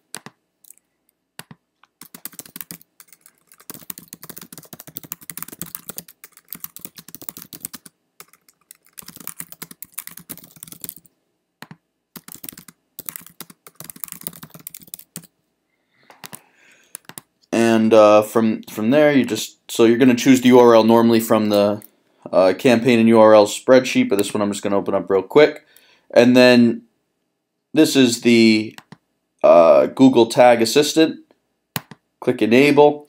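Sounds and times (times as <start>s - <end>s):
typing on computer keyboard: 1.4s - 15.3s, 16.1s - 17.3s, 31.8s - 32.0s.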